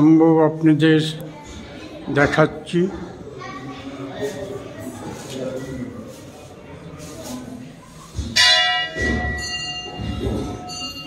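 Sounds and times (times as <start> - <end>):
metal temple bell ringing: 8.4 - 11.0.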